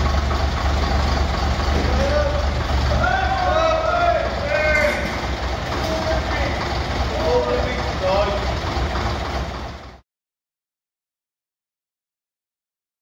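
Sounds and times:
bus engine idling: 0:00.0 - 0:10.0
voices: 0:01.6 - 0:09.4.

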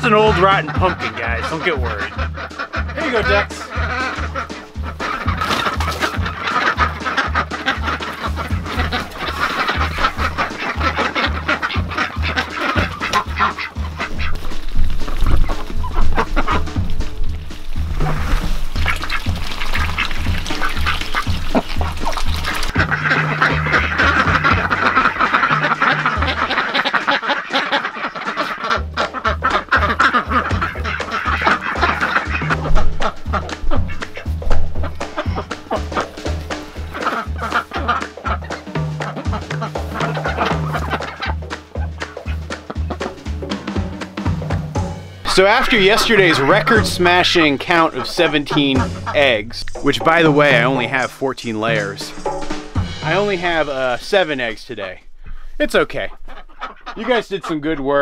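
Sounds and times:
background music with low beat: 0:00.0 - 0:55.2
ducks quacking: 0:00.0 - 0:58.0.

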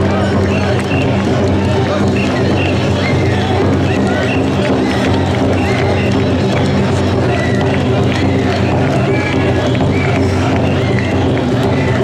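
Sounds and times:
noisy crowd: 0:00.0 - 0:12.0.

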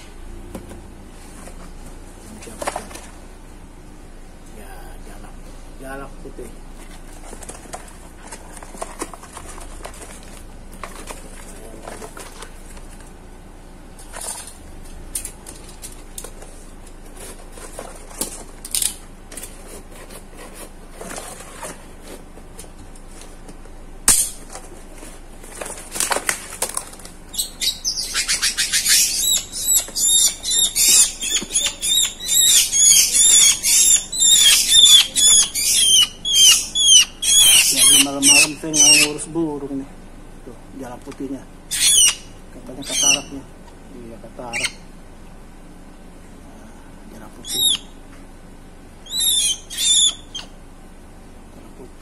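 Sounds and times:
rustling in cardboard box: 0:19.3 - 0:23.7
bird harsh squawks: 0:27.4 - 0:39.2, 0:41.7 - 0:43.3, 0:47.4 - 0:47.9, 0:49.1 - 0:50.5.

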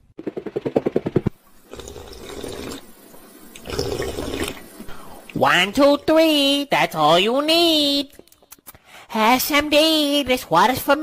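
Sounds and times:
running water hiss: 0:01.3 - 0:07.4
cartoon gulping: 0:01.7 - 0:02.9, 0:03.6 - 0:04.8.

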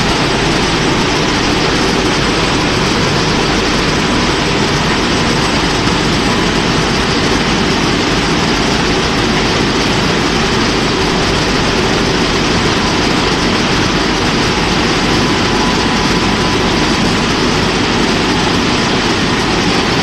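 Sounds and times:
car wash machine rushing noise: 0:00.0 - 0:20.0.

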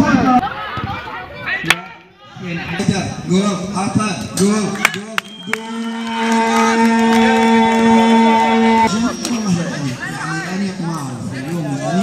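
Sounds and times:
man shouting long goal call: 0:05.5 - 0:08.8.

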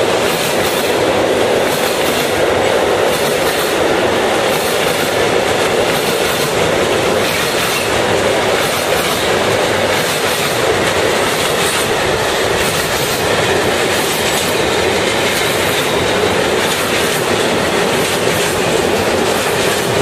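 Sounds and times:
train wheels rumbling on rails: 0:00.0 - 0:20.0.

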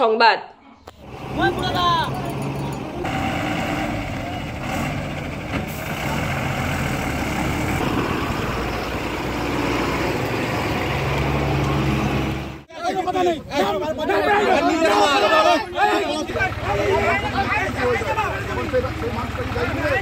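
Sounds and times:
motorcycle engines in traffic: 0:00.9 - 0:12.7, 0:13.4 - 0:20.0
truck diesel engine running: 0:00.9 - 0:20.0
crowd voices: 0:12.7 - 0:20.0.

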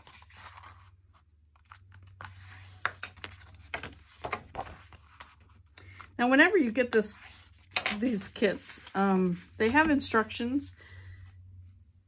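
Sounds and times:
paper sliding and scraping: 0:00.0 - 0:05.5, 0:07.0 - 0:10.0.

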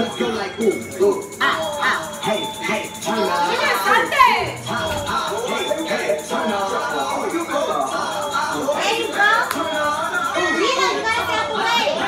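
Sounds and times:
background music: 0:00.0 - 0:12.0
children shouting and chattering: 0:10.0 - 0:12.0.

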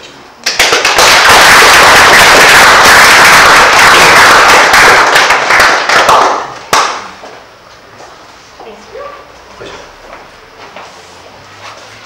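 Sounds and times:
audience applauding: 0:00.4 - 0:07.0.

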